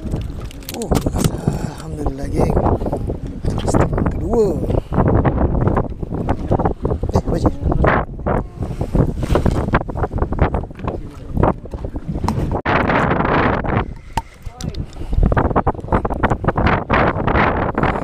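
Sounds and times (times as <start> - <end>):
heavy low rumble: 0.0 - 16.6
wind buffeting microphone: 0.0 - 18.0.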